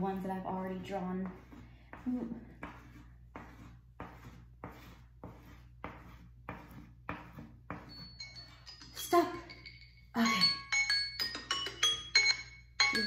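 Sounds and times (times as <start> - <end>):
crayon scraping on paper: 0.0 - 8.5
timer alarm chiming: 7.9 - 13.0.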